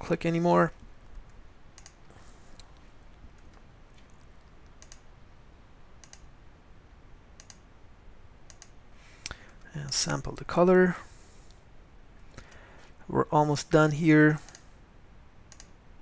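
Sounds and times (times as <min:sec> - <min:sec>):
low steady hum: 0:00.0 - 0:16.0
computer mouse clicks: 0:01.0 - 0:05.1, 0:06.0 - 0:06.3, 0:07.4 - 0:07.7, 0:08.5 - 0:09.7, 0:14.4 - 0:14.7, 0:15.5 - 0:15.8.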